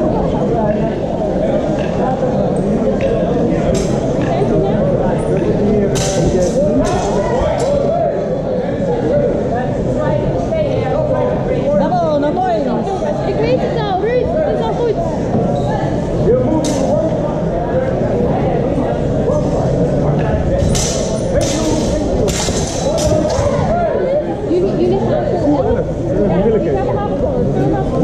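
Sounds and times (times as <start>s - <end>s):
echoing murmur of voices: 0.0s - 28.0s.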